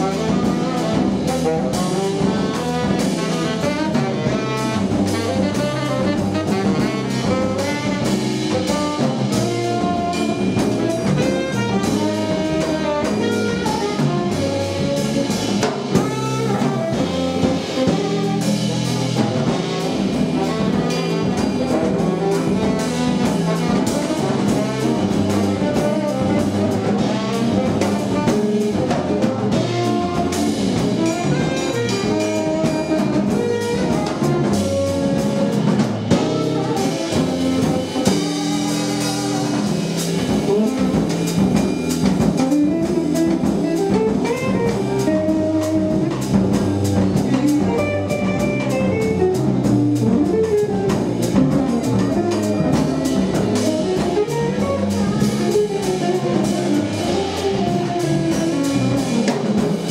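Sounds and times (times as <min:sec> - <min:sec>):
tenor saxophone melody: 0:00.0 - 0:59.9
walking double bass: 0:00.0 - 0:59.9
guitar: 0:29.2 - 0:59.9.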